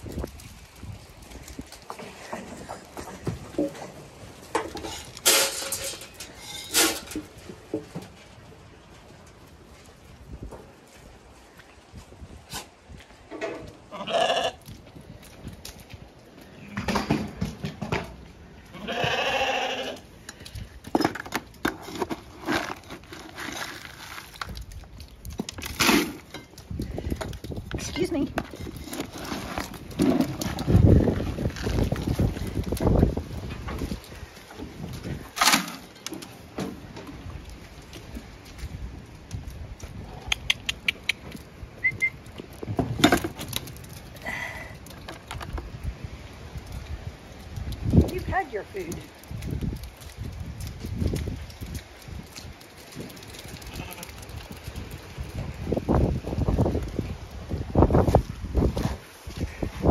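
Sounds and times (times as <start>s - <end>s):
wind rumble on microphone: 0.0s - 4.6s, 8.6s - 21.0s, 24.3s - 35.4s, 36.8s - 59.9s
sheep bleating: 13.9s - 14.6s, 18.7s - 20.0s.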